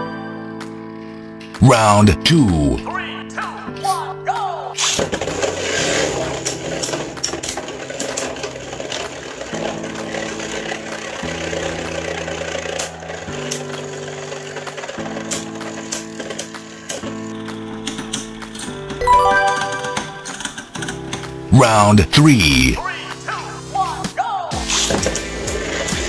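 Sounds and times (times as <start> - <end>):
spinning tops rattling whir: 5.4 - 17.2
background music with held chords: 18.7 - 23.8
short chiming jingle: 19.0 - 20.4.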